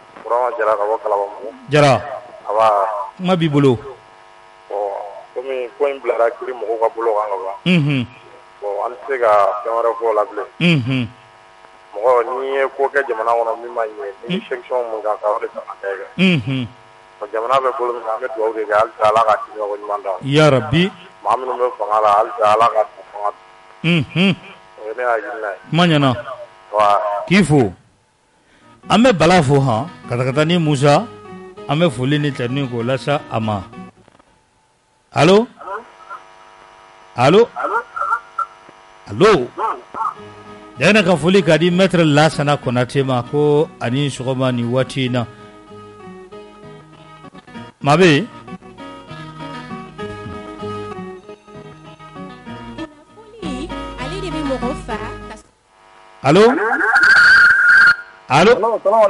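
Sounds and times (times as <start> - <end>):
mains hum on telephone line: 0.0 - 59.0
person talking on radio: 0.2 - 3.2, 8.6 - 10.8, 37.4 - 38.5, 39.3 - 40.2
person calling on telephone: 37.5 - 38.6, 53.1 - 55.4.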